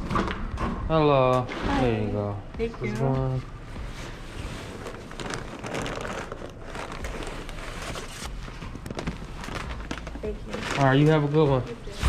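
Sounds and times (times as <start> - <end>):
paper bag rustling and crinkling: 3.8 - 12.0.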